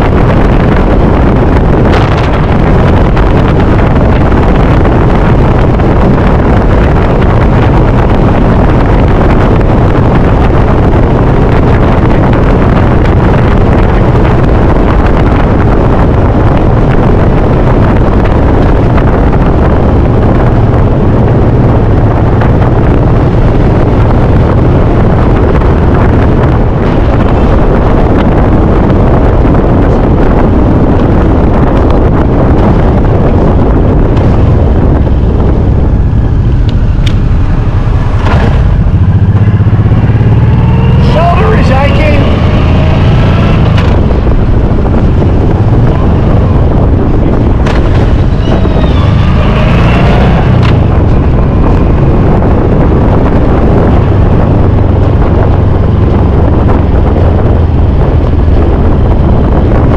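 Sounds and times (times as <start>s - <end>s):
motorcycle engine running: 0.0s - 59.9s
wind rush on microphone: 0.0s - 59.9s.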